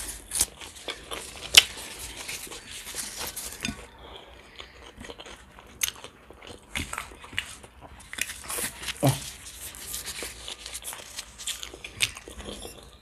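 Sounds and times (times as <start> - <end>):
flatbread crackling when torn: 8.1 - 12.2.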